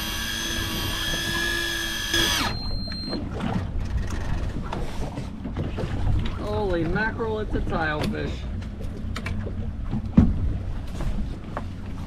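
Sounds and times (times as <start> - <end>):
electric fishing reel whining: 0.0 - 3.1
water noise: 0.0 - 12.0
wind: 0.0 - 12.0.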